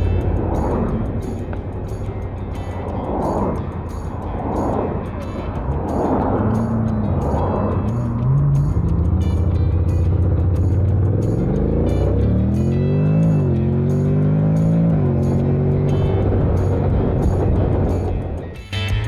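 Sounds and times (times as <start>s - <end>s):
background music with beat: 0.0s - 19.0s
motorcycle engine: 0.0s - 19.0s.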